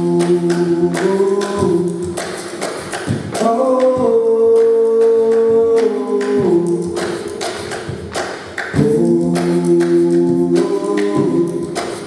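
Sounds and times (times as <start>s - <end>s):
thumps and taps keeping a beat: 0.0s - 12.0s
voices singing chords: 0.0s - 12.0s.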